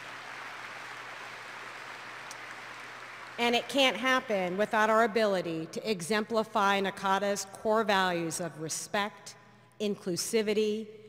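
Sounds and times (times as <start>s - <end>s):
audience applause: 0.0s - 3.4s.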